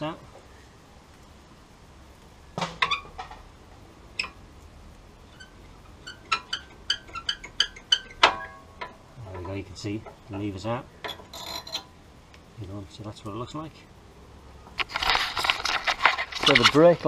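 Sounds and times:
ringing metal clink: 11.0 - 11.9.

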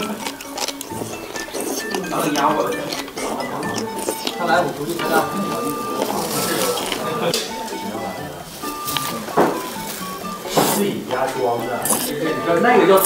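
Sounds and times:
dishes and cutlery clinking: 0.0 - 13.0
indistinct chatter of diners: 0.0 - 13.0.

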